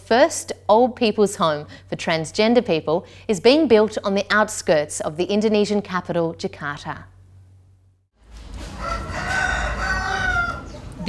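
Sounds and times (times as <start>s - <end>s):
rooster crowing: 8.6s - 11.0s.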